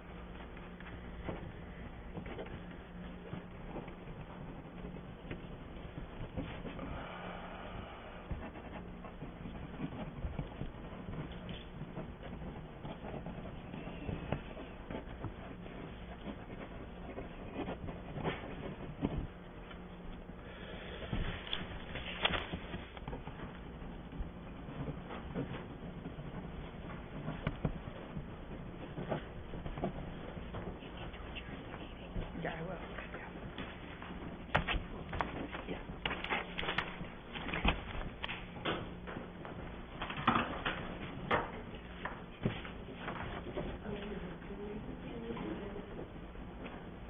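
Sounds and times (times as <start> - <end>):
faint knocks and rustles: 0.0 - 20.4, 21.0 - 47.0
steady low hum: 0.0 - 47.0
papers rustling: 21.2 - 44.3.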